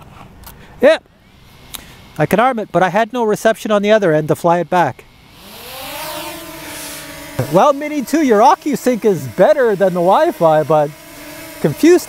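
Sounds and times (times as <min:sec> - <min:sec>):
drone propeller motors whining: 0:01.1 - 0:12.0.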